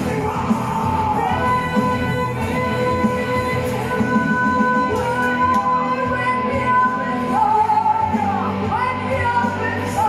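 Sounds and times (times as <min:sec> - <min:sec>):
live rock band: 0:00.0 - 0:10.0.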